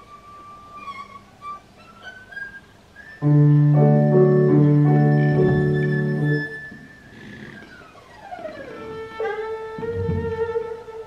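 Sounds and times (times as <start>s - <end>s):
erhu bowed high note: 0.0s - 3.9s.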